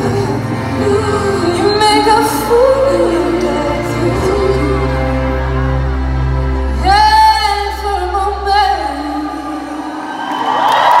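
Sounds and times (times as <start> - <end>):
crowd cheering: 9.4 - 11.0.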